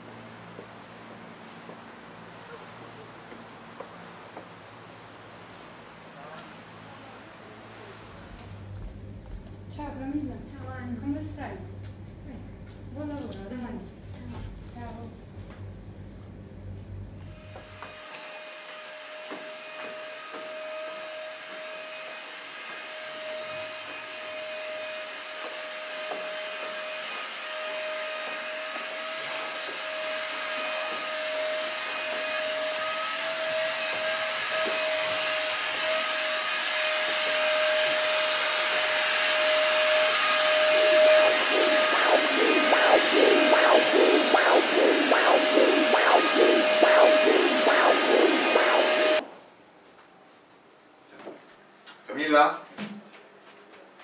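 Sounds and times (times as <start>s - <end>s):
vacuum cleaner whining: 8.1s - 10.6s, 17.2s - 49.2s
rapid rhythmic whooshing: 40.6s - 49.2s.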